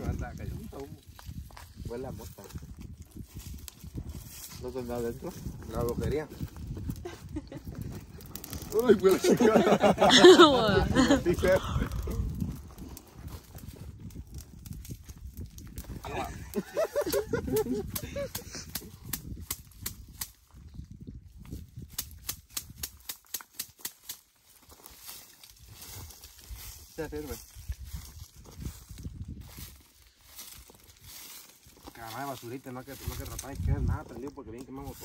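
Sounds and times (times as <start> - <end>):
burning plant crackling and scraping: 0.0 - 35.0
voices: 8.6 - 12.2, 16.0 - 18.4.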